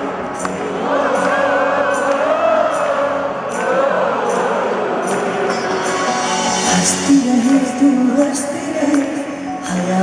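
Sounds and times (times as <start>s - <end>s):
melody with vibrato: 4.8s - 10.0s.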